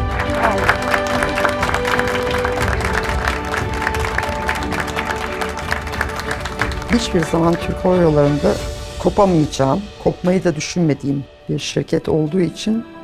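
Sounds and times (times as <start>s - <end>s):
people clapping: 0.0s - 8.6s
background music: 0.0s - 13.0s.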